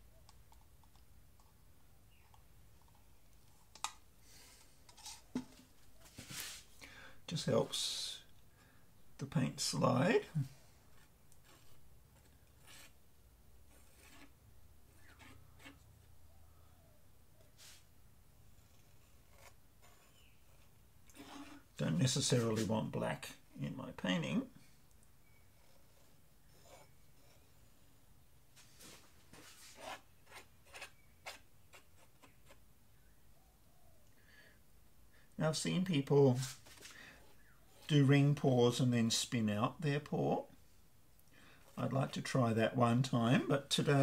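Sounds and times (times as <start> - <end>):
palette knife scraping paint: 10.9 - 13.0, 13.6 - 15.9, 18.7 - 21.7, 25.2 - 27.6, 29.4 - 32.6
palette knife scraping canvas: 11.0 - 13.0, 13.7 - 14.4, 15.0 - 15.8, 19.1 - 21.7.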